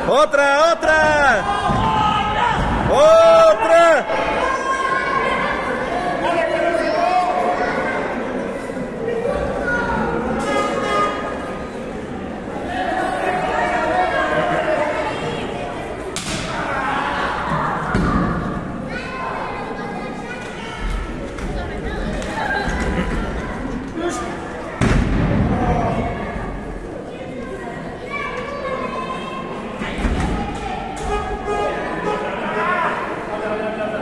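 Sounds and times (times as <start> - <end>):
spectators shouting and talking: 0.0 - 34.0.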